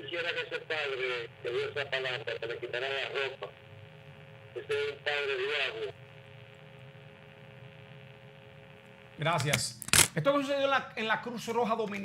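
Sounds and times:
voice over telephone line: 0:00.0 - 0:03.6, 0:04.5 - 0:06.0.

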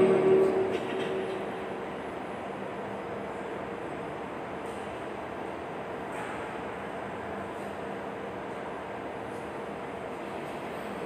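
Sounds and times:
chanted recitation note: 0:00.0 - 0:01.4
air conditioner and fan hum: 0:00.0 - 0:11.0.

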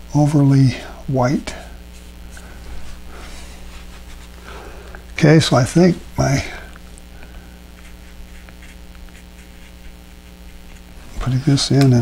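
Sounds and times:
electrical mains hum: 0:00.0 - 0:12.0
brush scratching on paper: 0:01.9 - 0:04.5, 0:07.7 - 0:11.7.

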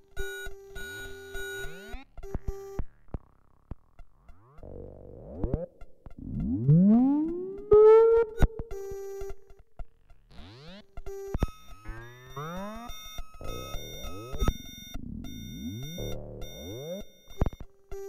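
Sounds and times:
experimental electronic music: 0:01.7 - 0:08.9, 0:09.9 - 0:17.3.

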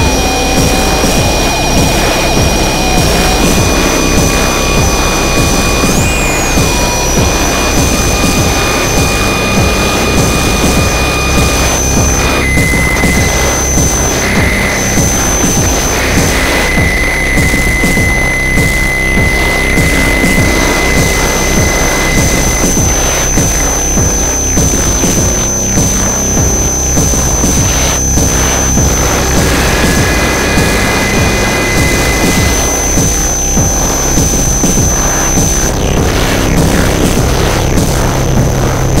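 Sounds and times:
distorted noise music: 0:00.0 - 0:39.0
high whining tones: 0:00.0 - 0:39.0.

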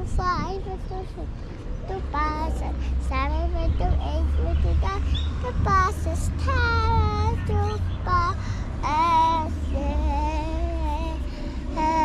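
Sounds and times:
young child singing: 0:00.0 - 0:12.0.

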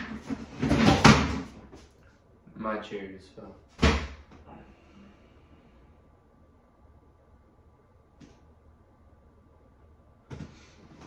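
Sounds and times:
chair falling over: 0:00.0 - 0:01.6.

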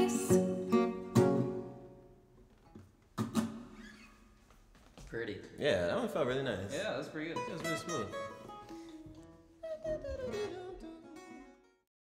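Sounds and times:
soft acoustic guitar: 0:00.0 - 0:04.4, 0:05.4 - 0:11.8.

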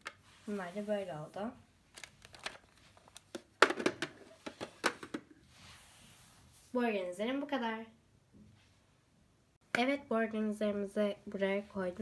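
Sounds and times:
packaging crinkling: 0:01.9 - 0:03.4.

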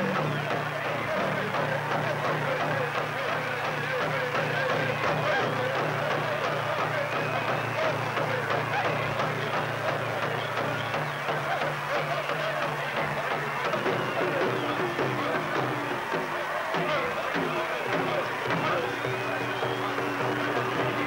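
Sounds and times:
pulsing drumbeat: 0:00.0 - 0:21.0.

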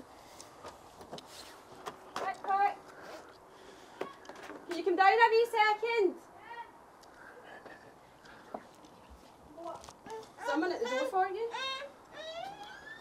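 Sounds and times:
people speaking: 0:02.2 - 0:02.8, 0:04.7 - 0:06.7, 0:09.5 - 0:11.6
high-pitched voice calling out: 0:10.1 - 0:12.4.

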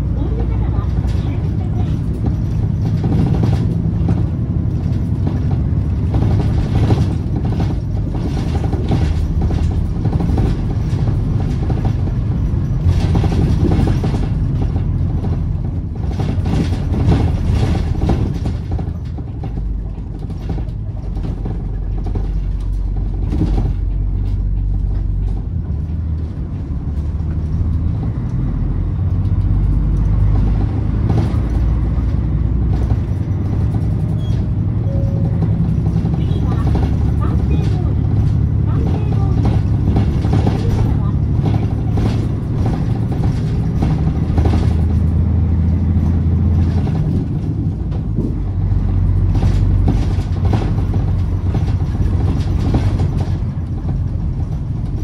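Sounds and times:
bus engine droning: 0:00.0 - 0:55.0
cabin rattles and knocks: 0:01.0 - 0:26.0.

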